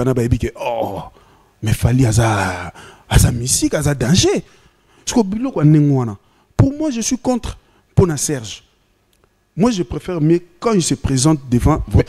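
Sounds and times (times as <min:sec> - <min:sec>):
man talking into microphone: 0:00.0 - 0:04.5, 0:05.1 - 0:08.7, 0:09.6 - 0:12.0.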